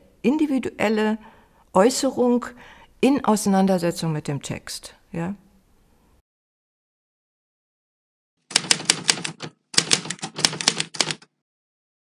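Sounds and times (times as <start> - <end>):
typewriter key clicks: 8.5 - 11.3.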